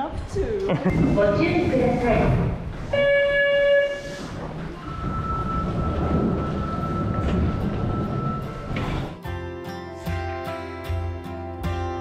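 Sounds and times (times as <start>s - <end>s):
low train rumble: 0.0s - 9.5s
train high whine: 0.9s - 9.3s
door chime tone: 4.8s - 9.3s.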